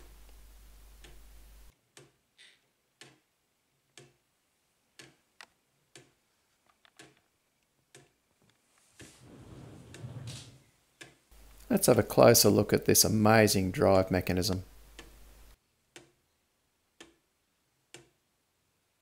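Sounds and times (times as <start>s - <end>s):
wooden clock ticking: 0.1s - 4.3s, 4.9s - 6.2s, 6.8s - 8.3s, 13.8s - 16.2s, 16.9s - 18.2s.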